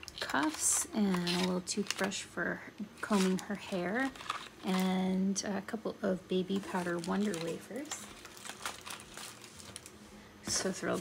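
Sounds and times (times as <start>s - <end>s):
packaging crinkling and rustling: 0.0s - 2.3s, 3.0s - 5.0s, 6.5s - 11.0s.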